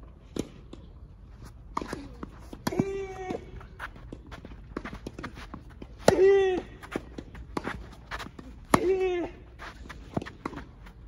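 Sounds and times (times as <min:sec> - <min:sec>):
footsteps on court: 0:01.3 - 0:11.0
racket hitting ball: 0:01.7 - 0:09.1, 0:09.8 - 0:10.8.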